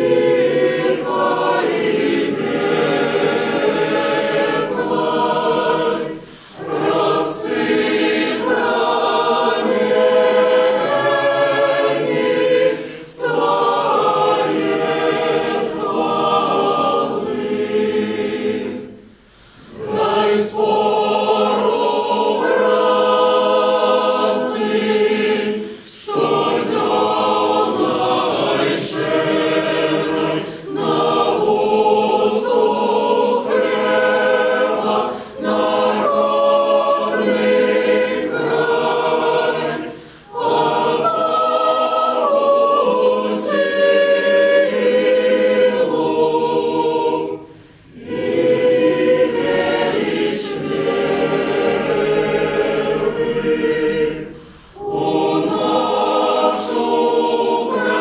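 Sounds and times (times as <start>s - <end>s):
choir singing unaccompanied: 0.0s - 58.0s.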